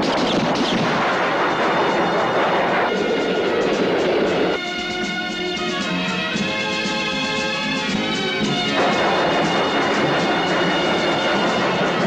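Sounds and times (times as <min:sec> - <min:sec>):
train running: 0:00.0 - 0:12.0
orchestral film music: 0:00.5 - 0:12.0.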